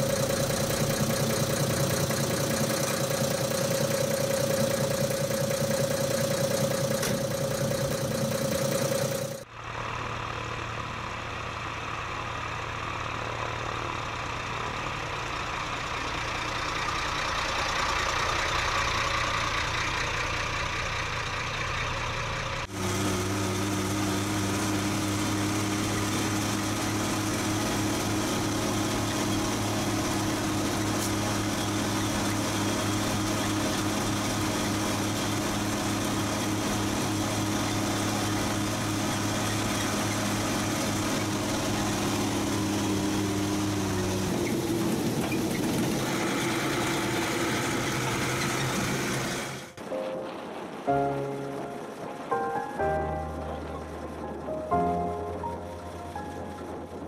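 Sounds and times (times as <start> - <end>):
truck engine idling: 0.0 - 49.8, 50.6 - 57.0.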